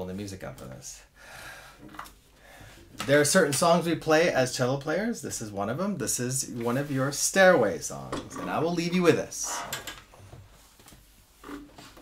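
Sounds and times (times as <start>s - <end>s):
man breathing out: 1.2s - 2.9s.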